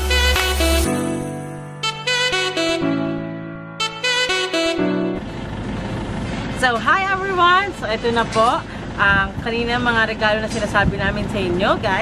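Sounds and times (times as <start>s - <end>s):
saxophone music sting: 0.0s - 5.3s
outdoor background noise: 5.2s - 12.0s
woman talking: 6.6s - 12.0s.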